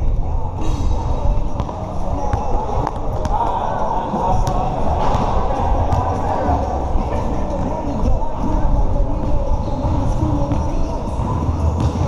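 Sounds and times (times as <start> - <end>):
distant voices: 0.0 - 12.0
basketball bouncing on hard court: 1.5 - 3.5, 4.3 - 6.1
music: 4.4 - 12.0.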